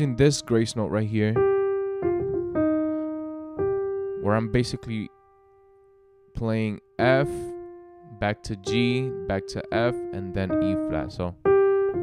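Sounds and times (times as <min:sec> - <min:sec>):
piano gospel melody: 0:00.0 - 0:12.0.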